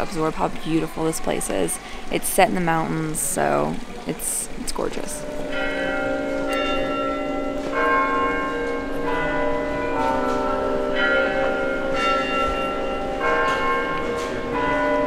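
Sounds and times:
church bells ringing: 0:04.9 - 0:15.0.

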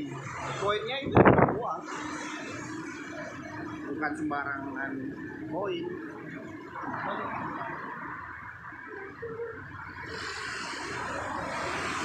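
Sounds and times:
cars and scooters passing: 0:00.0 - 0:12.0.

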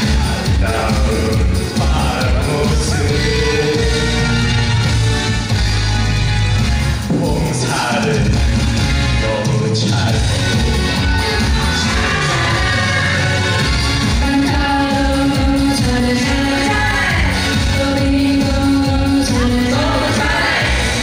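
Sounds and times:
people singing into microphones: 0:00.0 - 0:04.6, 0:11.1 - 0:21.0
upbeat backing music: 0:00.0 - 0:21.0.

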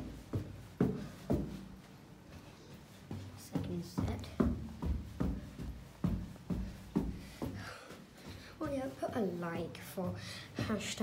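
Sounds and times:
footsteps on carpeted stairs: 0:00.0 - 0:11.0.

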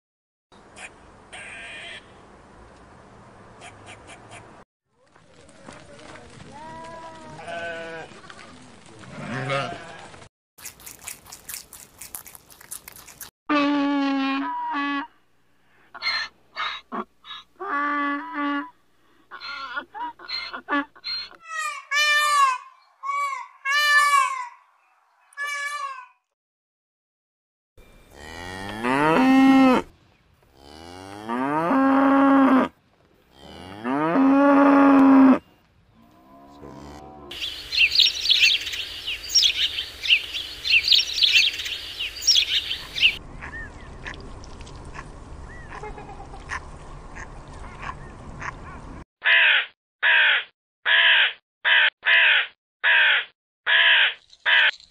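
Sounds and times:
sheep bleating: 0:06.5 - 0:08.2, 0:09.1 - 0:10.1
rabbits chewing stalks: 0:10.1 - 0:13.3
cow mooing: 0:28.1 - 0:29.9, 0:36.0 - 0:37.4.

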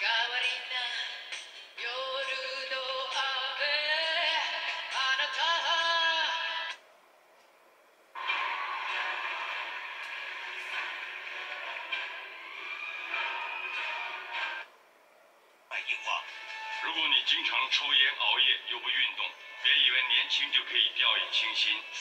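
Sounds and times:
television music: 0:00.0 - 0:22.0.

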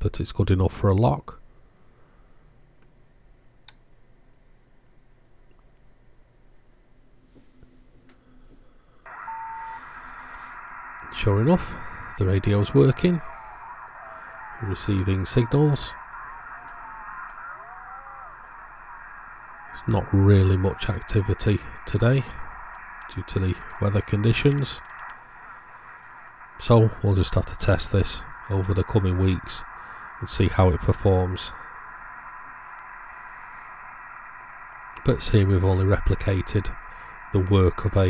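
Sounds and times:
faint garbled radio voices: 0:09.1 - 0:38.0
radio static hiss: 0:09.1 - 0:38.0.

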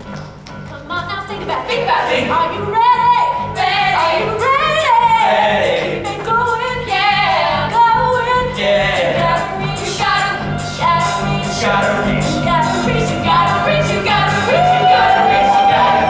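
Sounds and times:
instrumental accompaniment: 0:00.0 - 0:16.0
singers with vibrato: 0:00.9 - 0:16.0.

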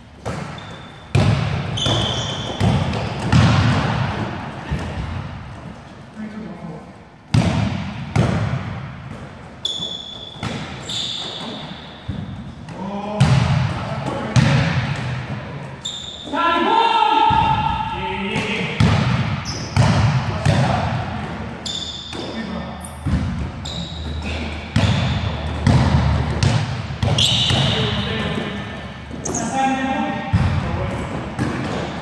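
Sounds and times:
basketball bouncing in gym: 0:00.0 - 0:05.9, 0:07.3 - 0:16.3, 0:17.2 - 0:32.0
sneakers squeaking: 0:00.0 - 0:06.1, 0:07.3 - 0:32.0.

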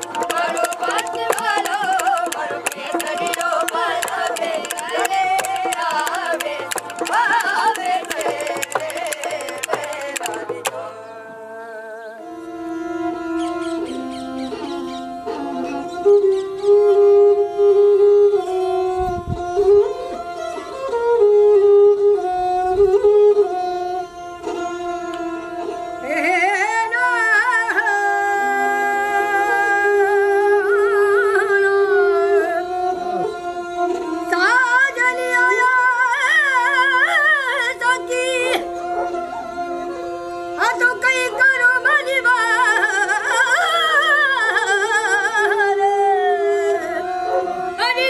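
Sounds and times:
hand drum strokes: 0:00.0 - 0:10.9
high ornamented singing voice: 0:00.0 - 0:17.3
bowed string instrument melody: 0:00.0 - 0:48.0.

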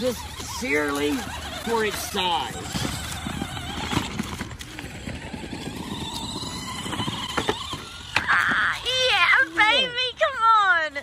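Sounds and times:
toy truck rustling clatter: 0:00.0 - 0:11.0
toy trucks knocking together: 0:00.2 - 0:09.2.

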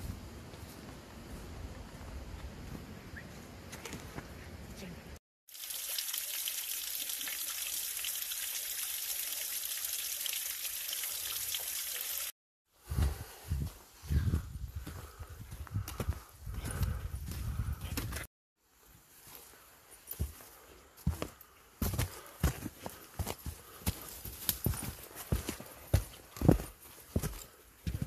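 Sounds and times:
rushing water: 0:05.5 - 0:12.3
footsteps on gravel and leaves: 0:19.2 - 0:28.0.

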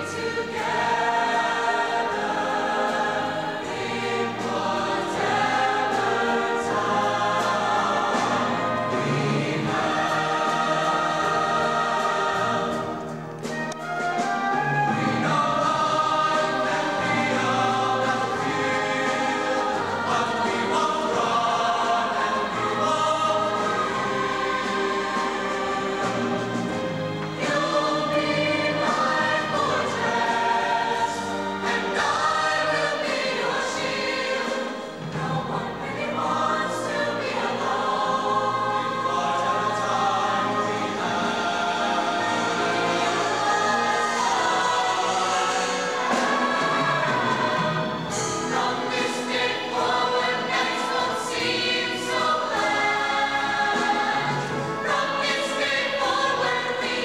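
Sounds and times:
choir singing in harmony: 0:00.0 - 0:57.0.

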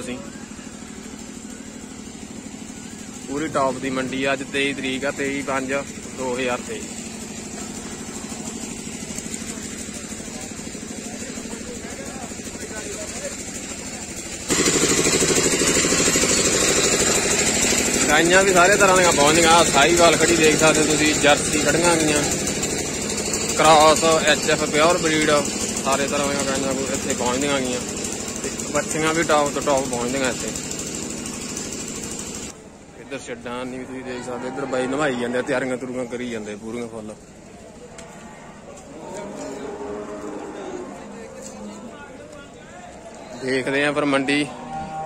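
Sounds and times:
low engine idling: 0:00.0 - 0:44.0.

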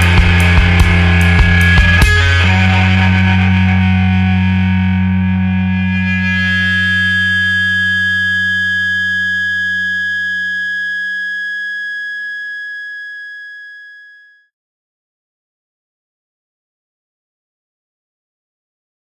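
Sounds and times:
distorted guitar chord ringing: 0:00.0 - 0:14.4.

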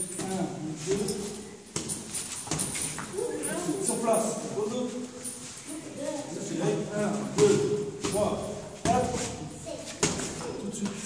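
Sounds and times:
boxing gloves striking mitts: 0:00.0 - 0:03.0, 0:07.4 - 0:10.5.

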